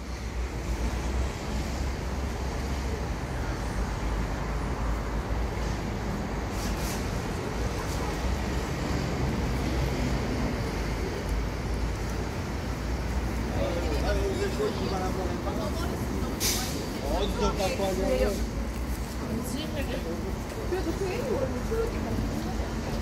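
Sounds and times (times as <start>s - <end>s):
road traffic rumble: 0.0s - 23.0s.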